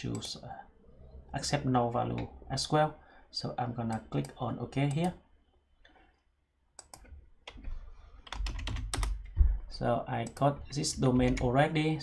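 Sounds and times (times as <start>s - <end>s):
computer keyboard typing: 6.8s - 9.3s.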